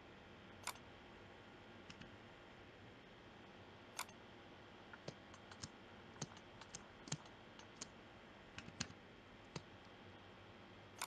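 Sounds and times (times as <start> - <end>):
mouse and keyboard clicks: 0.6 - 0.8, 1.8 - 2.2, 4.0 - 4.2, 4.9 - 9.9.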